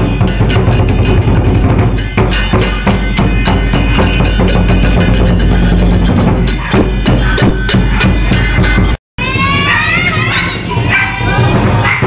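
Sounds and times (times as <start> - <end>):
cymbals clashing: 0.0 - 12.0
drum beaten fast: 0.0 - 12.0.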